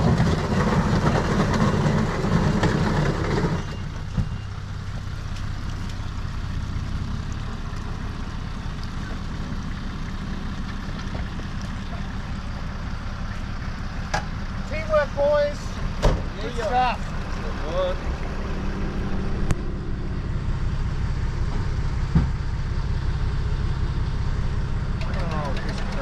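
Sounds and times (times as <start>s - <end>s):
diesel truck engine under load: 0.0s - 26.0s.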